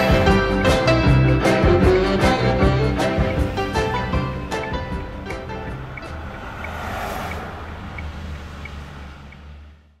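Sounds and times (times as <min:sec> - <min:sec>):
engine and road rumble: 0:00.0 - 0:10.0
vehicle swishing past: 0:03.4 - 0:09.8.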